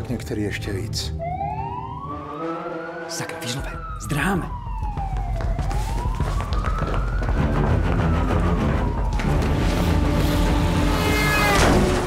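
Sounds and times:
dramatic music: 0.0 - 5.2, 7.0 - 12.0
police siren wailing: 1.1 - 11.7.

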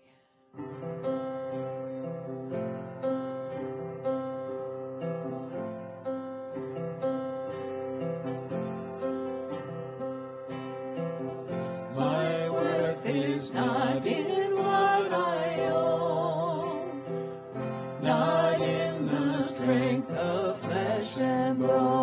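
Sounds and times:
person singing: 11.9 - 17.2, 18.0 - 22.0.

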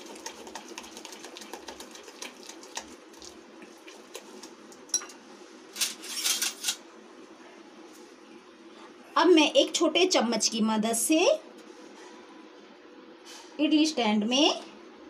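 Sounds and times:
batter mixed by hand squelching: 0.0 - 4.8.

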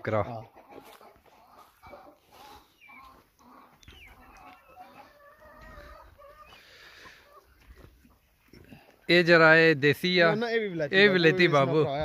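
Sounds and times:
chickens clucking: 0.0 - 9.2.

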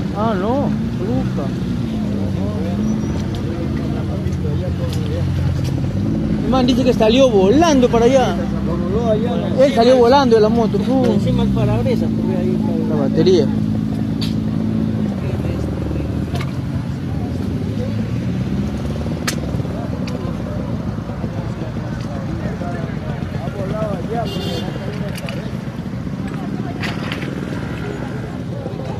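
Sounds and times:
vehicle engines running: 0.0 - 28.9.

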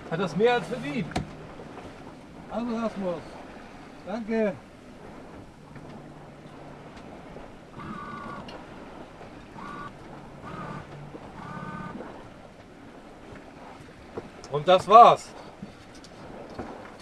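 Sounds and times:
wind on microphone: 0.0 - 14.5, 15.3 - 17.0
water rushing along hull: 0.0 - 17.0.

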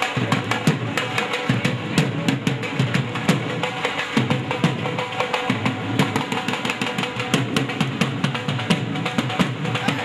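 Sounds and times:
fast busy drumming: 0.0 - 10.0.

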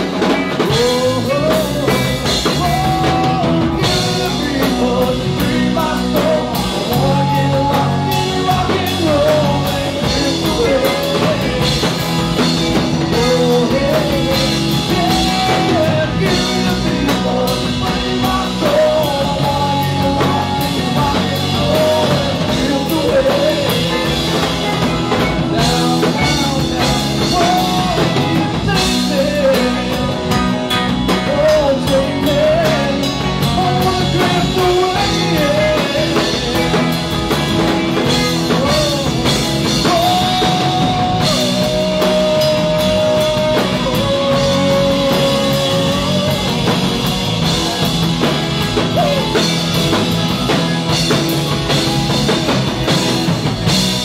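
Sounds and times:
man singing: 0.0 - 53.4
rock band playing: 0.0 - 54.0.

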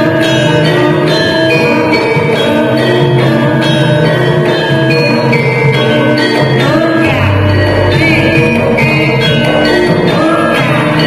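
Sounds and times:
gamelan metallophones and gongs: 0.0 - 11.0.

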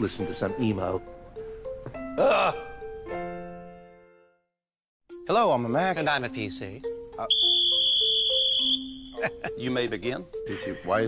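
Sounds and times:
referee's whistle blast: 7.3 - 9.1.

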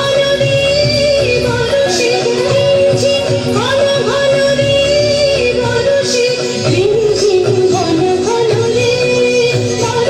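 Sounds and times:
drums: 0.0 - 10.0
keyboard: 0.0 - 10.0
women singing in unison: 0.0 - 10.0.

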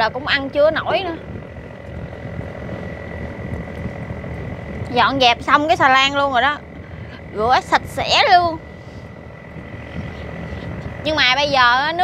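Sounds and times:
barge engine rumbling: 0.0 - 12.0
faint high whine: 0.0 - 12.0.

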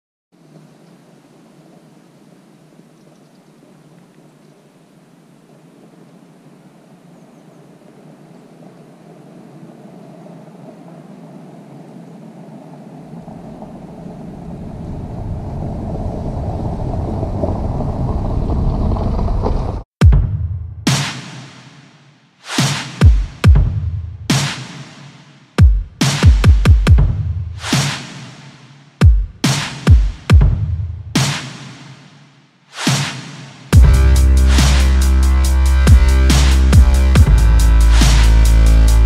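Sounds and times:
deep engine rumble: 33.8 - 39.0.

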